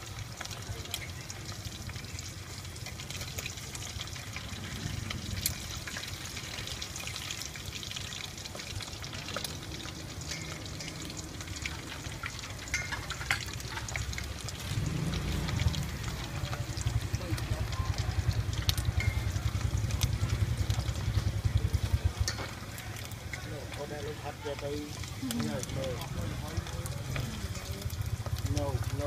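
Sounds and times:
food cooking in hot liquid: 0:00.0 - 0:29.0
liquid dripping and pouring: 0:00.0 - 0:29.0
metal tongs clinking on bowl: 0:10.2 - 0:14.2, 0:18.9 - 0:19.7
low rumble: 0:14.0 - 0:23.2.

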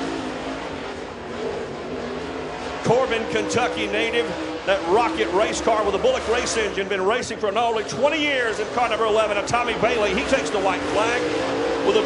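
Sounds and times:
race car engine at speed: 0:00.0 - 0:12.0
announcer's voice: 0:02.8 - 0:12.0.

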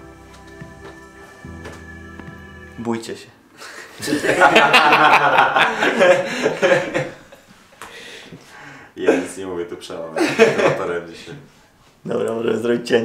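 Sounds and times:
people laughing hard: 0:03.9 - 0:07.5, 0:10.2 - 0:11.0.

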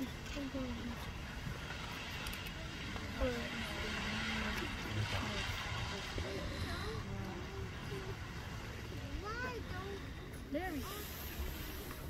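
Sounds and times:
geyser steam rushing hiss: 0:00.0 - 0:12.0.

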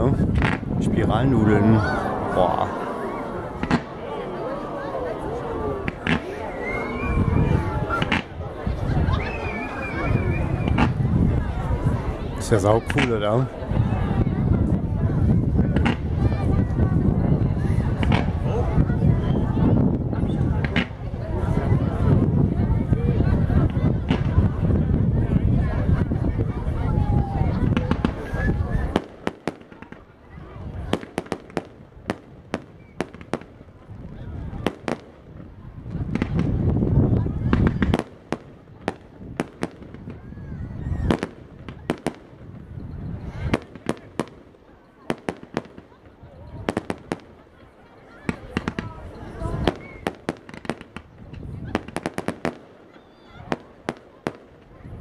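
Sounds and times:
fireworks bangs and crackles: 0:00.0 - 0:55.0.

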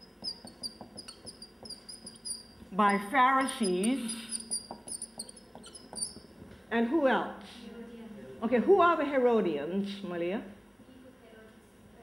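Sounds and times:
marker squeaking on whiteboard: 0:00.0 - 0:06.4
marker tip ticks: 0:00.2 - 0:06.2.

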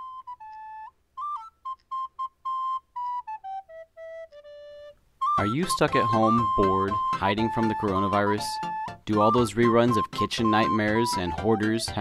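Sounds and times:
solo flute-like melody: 0:00.0 - 0:12.0.

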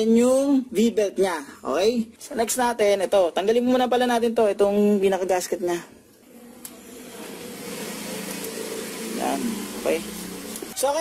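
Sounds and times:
steady mechanical hum with hiss: 0:06.3 - 0:10.7.

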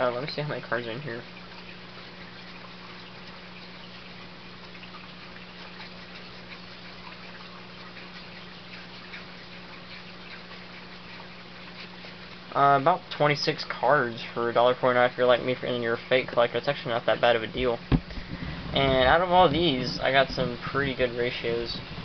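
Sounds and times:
low even hum: 0:00.0 - 0:22.0
steady hiss: 0:11.2 - 0:22.0.

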